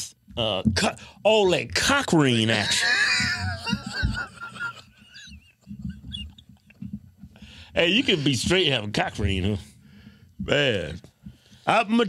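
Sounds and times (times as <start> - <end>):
men laughing quietly: 2.5 - 6.7.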